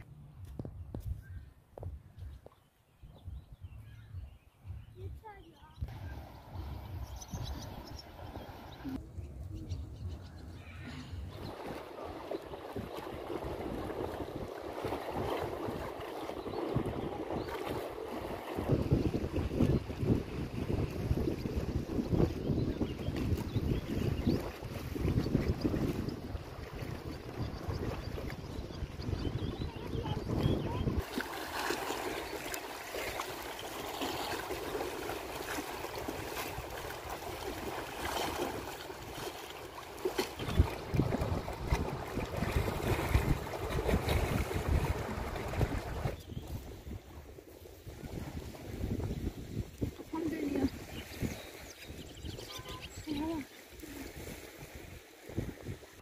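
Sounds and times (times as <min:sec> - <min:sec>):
wind buffeting microphone: 0:00.6 - 0:32.5, 0:40.0 - 0:56.0
waves lapping against stone: 0:29.5 - 0:46.7.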